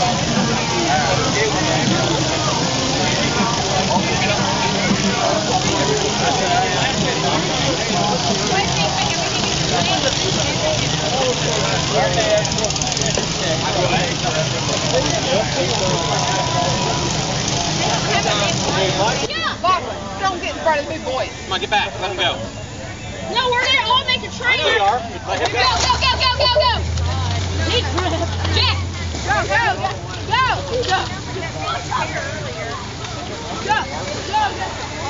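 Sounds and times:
crowd chatter: 0.0 - 35.0
truck engines running: 0.0 - 35.0.

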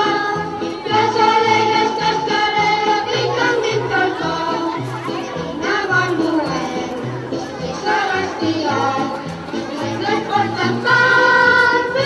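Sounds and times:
choir singing: 0.0 - 4.8, 7.7 - 9.1, 9.7 - 12.0.

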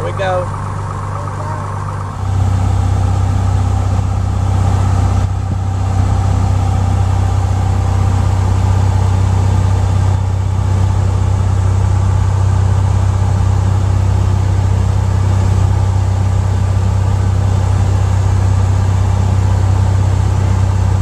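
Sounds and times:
light airplane engine drone: 0.0 - 21.0.

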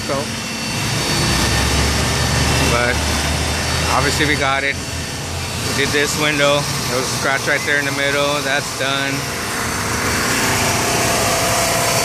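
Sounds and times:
electric rotary polisher running: 0.0 - 12.0
steady low hum: 0.0 - 12.0.

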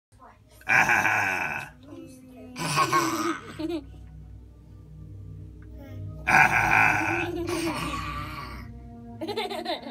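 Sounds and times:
person's rough-voiced vocal sound: 0.7 - 1.8, 6.2 - 8.7.

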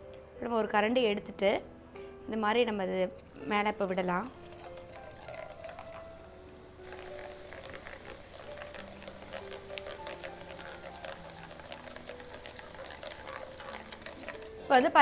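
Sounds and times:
soft background music: 0.0 - 15.0
batter crackling in hot oil: 3.2 - 15.0.

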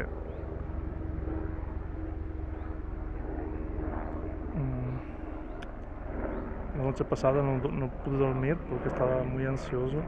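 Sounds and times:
distant engine droning: 0.0 - 10.0.

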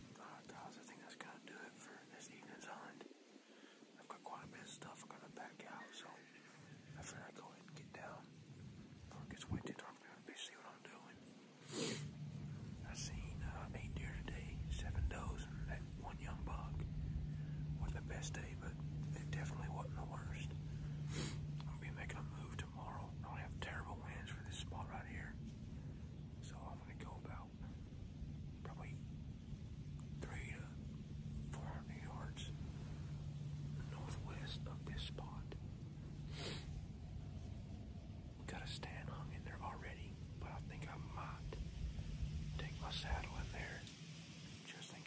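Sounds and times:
man whispering: 0.0 - 45.0
steady low hum: 0.0 - 45.0.

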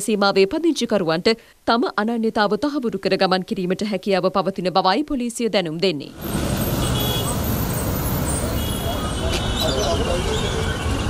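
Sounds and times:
bus passing: 6.1 - 11.0
rumble of street traffic: 6.1 - 11.0.

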